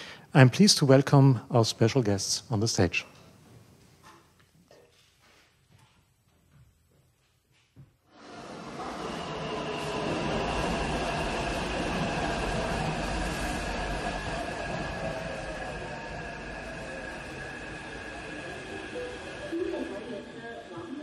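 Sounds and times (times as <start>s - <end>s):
subway train rumbling and hissing: 8.1s - 21.0s
steady high-pitched tones: 8.6s - 21.0s.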